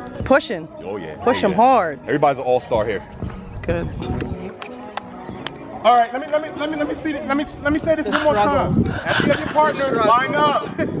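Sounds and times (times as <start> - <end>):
music playing: 0.0 - 11.0
sharp hand claps: 4.2 - 5.6.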